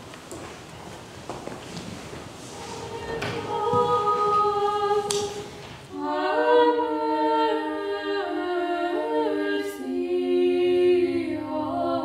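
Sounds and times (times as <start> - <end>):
choir singing a cappella: 2.4 - 12.0.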